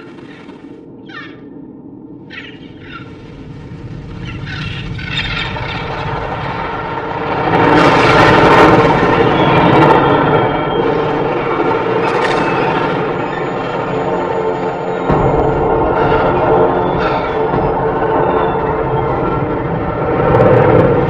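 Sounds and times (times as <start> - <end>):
deep mechanical rumble of engines: 0.0 - 21.0.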